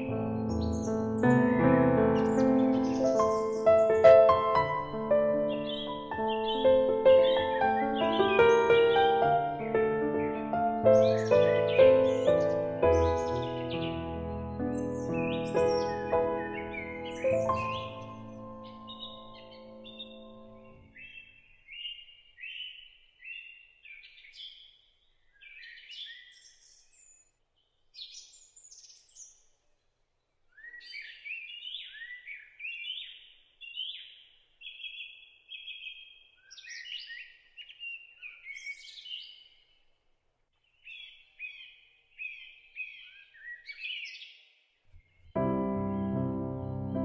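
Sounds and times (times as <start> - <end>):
songbirds chirping: 0.0 - 47.0.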